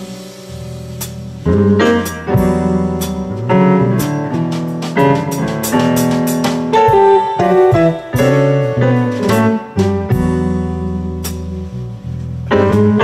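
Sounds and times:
cymbal and drum strokes: 0:00.0 - 0:10.5
jazz band playing live: 0:00.0 - 0:13.0
piano chords: 0:00.0 - 0:13.0.

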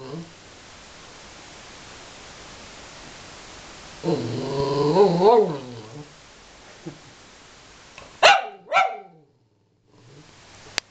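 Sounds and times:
dog barking: 0:08.2 - 0:09.2.

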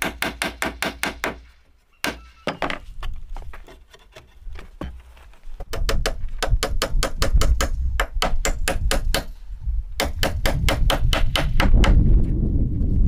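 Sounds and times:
rapid hammer blows on wood: 0:10.0 - 0:12.0.

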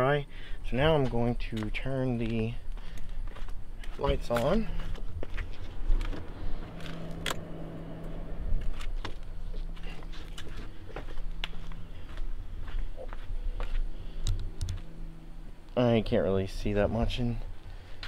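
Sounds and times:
steady low hum: 0:00.0 - 0:18.0
footsteps on concrete: 0:00.9 - 0:06.3, 0:08.6 - 0:14.9.

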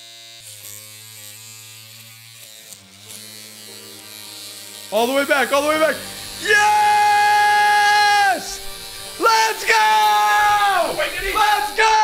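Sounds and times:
electric razor buzzing: 0:00.0 - 0:12.0.

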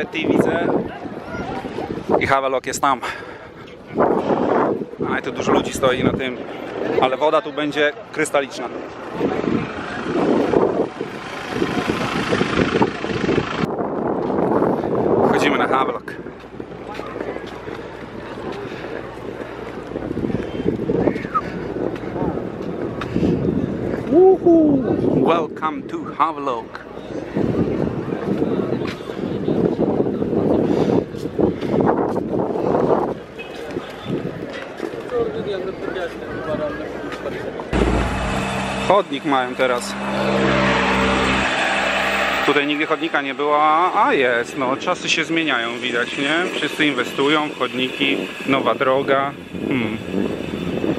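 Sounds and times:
wind noise on microphone: 0:00.0 - 0:07.3, 0:08.5 - 0:43.2, 0:46.0 - 0:50.9
people chattering: 0:00.0 - 0:13.4
car driving past: 0:37.7 - 0:47.2.

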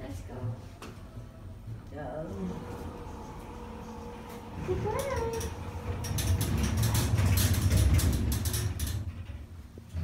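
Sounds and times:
elevator car rumbling: 0:01.0 - 0:10.0
clicks and rattles: 0:04.3 - 0:10.0.

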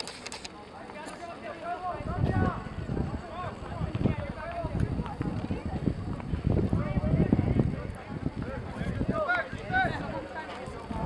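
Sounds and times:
distant voices shouting: 0:01.2 - 0:05.2.

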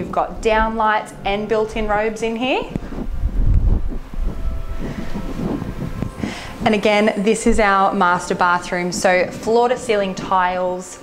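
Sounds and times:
low rumble: 0:00.0 - 0:09.2.

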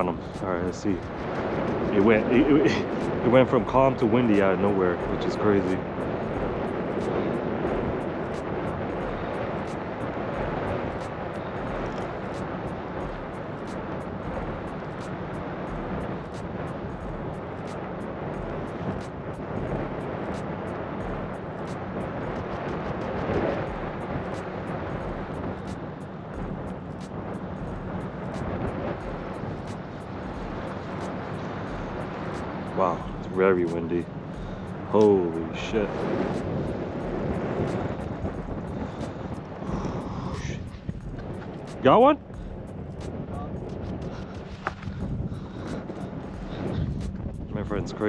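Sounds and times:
wind rushing over microphone: 0:00.0 - 0:48.0.

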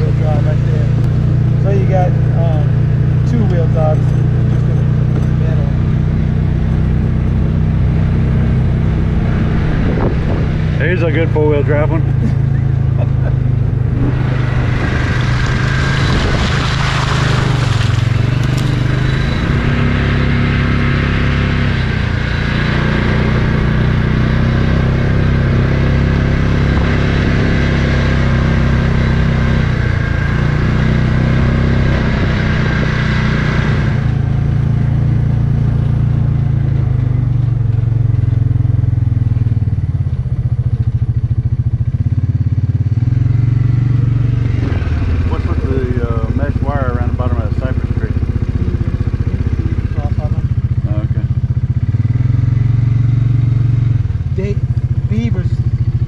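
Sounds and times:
rushing noise from wheels: 0:00.0 - 0:12.5, 0:13.1 - 0:39.0
utility vehicle engine running: 0:00.0 - 0:56.0.

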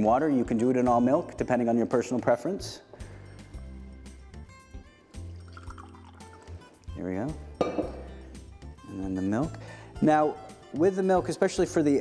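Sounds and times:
background music: 0:00.0 - 0:12.0
water pouring into glass mug: 0:05.3 - 0:06.8.

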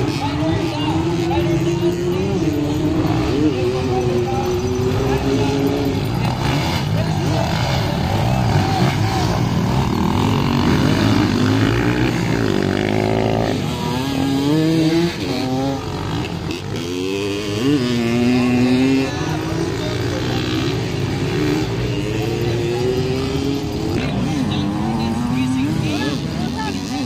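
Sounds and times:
dirt bike engines revving: 0:00.0 - 0:27.0.

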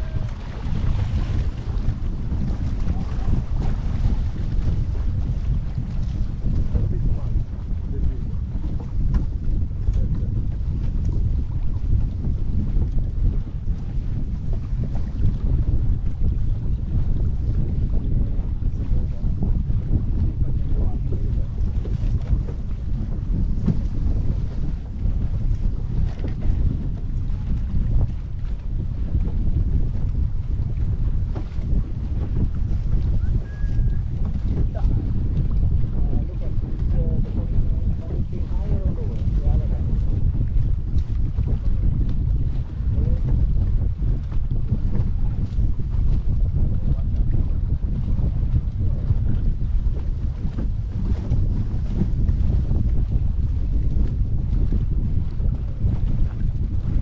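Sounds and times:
water slapping against hull: 0:00.0 - 0:57.0
wind buffeting microphone: 0:00.0 - 0:57.0.

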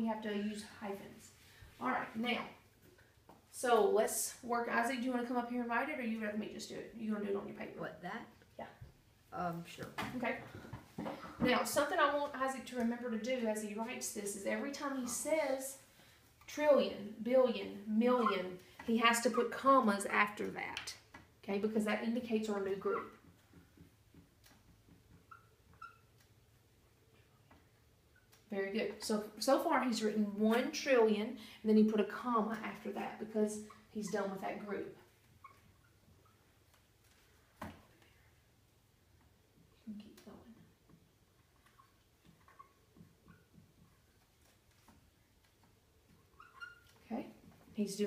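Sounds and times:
marker squeaking on whiteboard: 0:18.0 - 0:19.5, 0:22.2 - 0:26.6, 0:27.2 - 0:28.5, 0:33.6 - 0:37.3, 0:41.3 - 0:47.7
faint high squeak: 0:25.2 - 0:26.2, 0:46.3 - 0:47.0.

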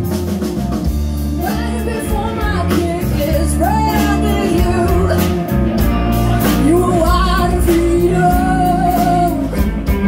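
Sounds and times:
live band playing loudly: 0:00.0 - 0:10.0.

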